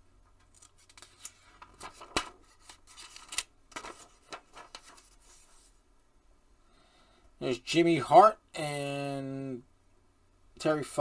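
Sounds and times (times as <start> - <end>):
magazine pages crackling and rustling: 0.4 - 5.8.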